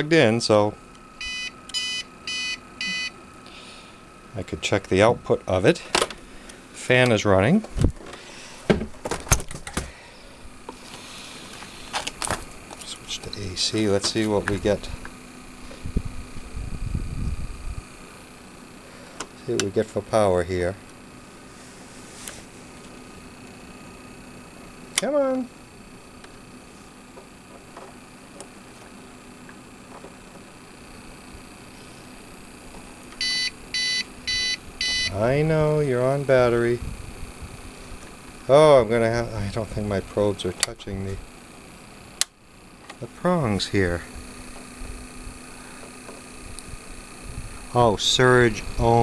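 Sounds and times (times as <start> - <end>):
cooling fan hum: 0.0 - 49.0
short high-pitched alarm beeps: 1.2 - 3.2, 33.2 - 35.2.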